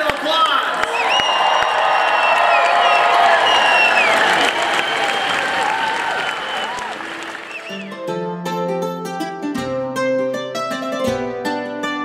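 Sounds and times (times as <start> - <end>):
audience applauding: 0.0 - 8.0
whoops and whistles: 0.9 - 7.9
music: 6.6 - 12.0.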